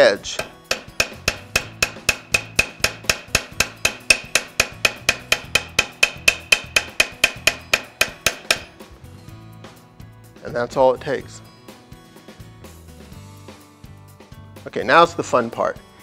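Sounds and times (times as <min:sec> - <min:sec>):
hammer tapping brass on steel: 0:00.2 - 0:08.8.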